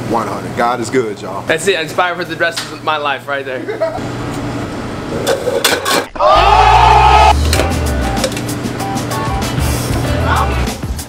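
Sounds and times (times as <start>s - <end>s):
kitchenware clattering: 5.2s - 6.1s
kitchenware scraping on wire shelf: 5.2s - 6.1s.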